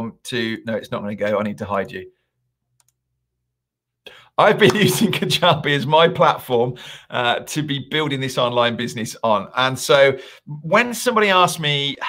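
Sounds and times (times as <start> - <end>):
faint computer clicks: 2.8 - 3.0.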